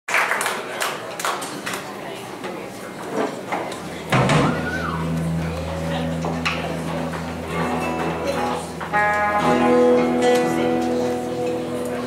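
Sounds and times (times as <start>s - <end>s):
rock band playing: 4.0s - 12.0s
electric guitar sliding down: 4.2s - 12.0s.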